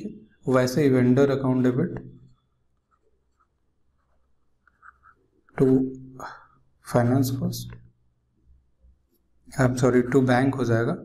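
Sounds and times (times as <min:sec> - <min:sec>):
stylus scratching on tablet: 0:02.3 - 0:05.6.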